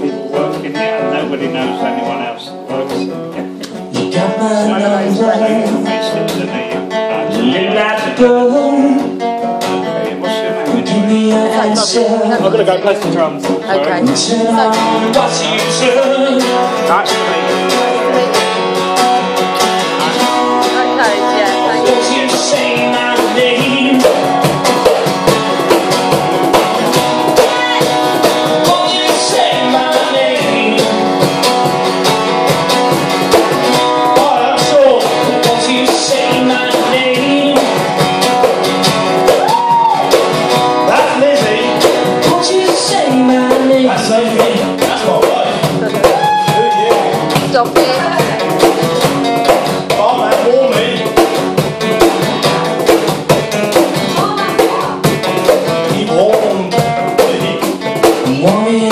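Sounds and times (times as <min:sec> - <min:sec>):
man singing: 0:00.0 - 0:18.7, 0:19.8 - 0:24.5, 0:27.3 - 0:31.4, 0:34.0 - 0:38.0, 0:40.7 - 0:48.5, 0:49.6 - 0:51.4, 0:55.6 - 0:58.9
acoustic guitar strumming: 0:00.0 - 0:58.9
cajon beaten by hand: 0:10.6 - 0:58.9.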